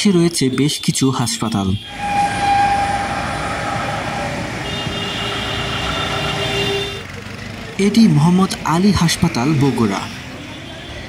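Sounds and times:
street traffic: 0.0s - 11.0s
vehicle horn: 1.5s - 7.1s.

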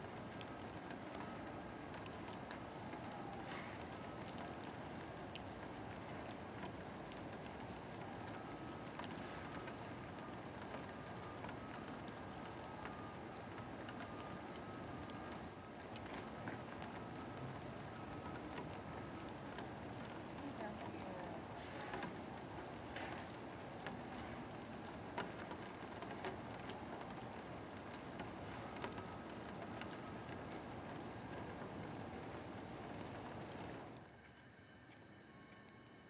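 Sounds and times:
faint steady tone: 0.0s - 36.0s
steady rain falling: 0.0s - 36.0s.

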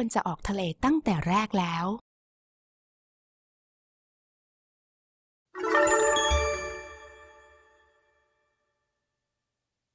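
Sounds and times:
bell-like chime jingle: 5.6s - 8.6s.

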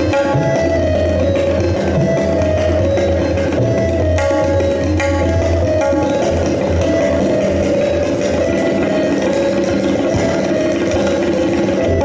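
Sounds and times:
harmonium melody: 0.0s - 12.0s
tabla playing fast: 0.0s - 12.0s.

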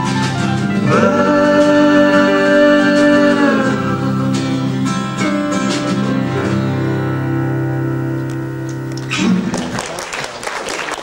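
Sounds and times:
acoustic guitar strumming: 0.0s - 9.8s
long held chord tones: 0.8s - 9.1s.

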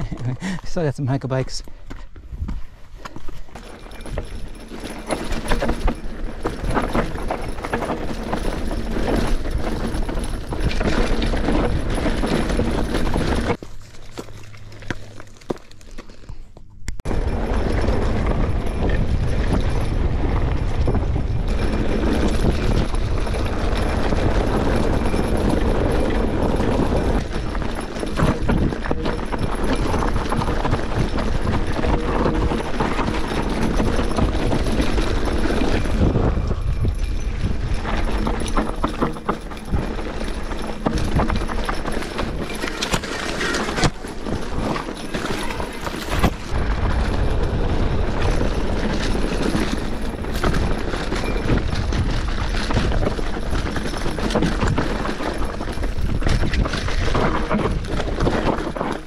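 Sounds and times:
bike rattling over bumps: 0.0s - 59.0s
tyres rolling over dirt and rock: 0.0s - 59.0s
wind rumble on microphone: 17.0s - 59.0s.

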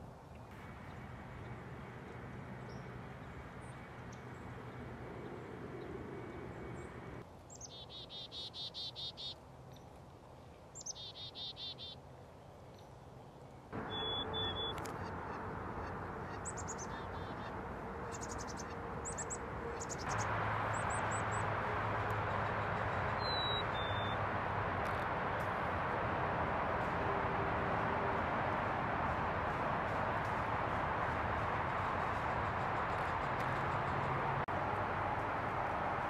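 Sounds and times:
birds chirping and trilling: 0.6s - 9.8s, 10.8s - 12.0s, 13.8s - 21.5s, 22.3s - 24.2s
whistled bird notes: 13.8s - 14.8s
steady rushing background noise: 13.8s - 36.0s.

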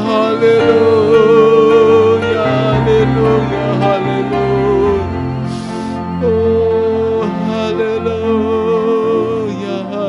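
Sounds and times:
electronic keyboard chords: 0.0s - 10.0s
person singing with vibrato: 0.0s - 10.0s.

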